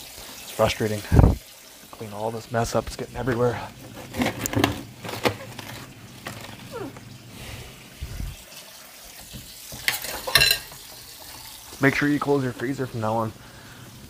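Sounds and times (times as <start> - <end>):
knocks and rustles of handling: 3.2 - 7.1
plastic bag crackle: 3.9 - 7.3.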